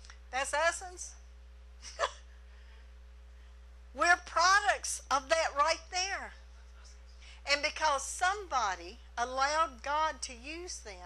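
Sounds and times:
low electrical hum: 0.0 - 11.0
woman laughing: 1.8 - 2.3.

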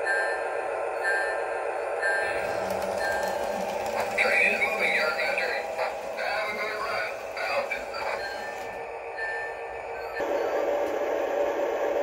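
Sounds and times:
thin steady tones: 0.0 - 10.6
muffled voice from speaker: 4.0 - 8.4.

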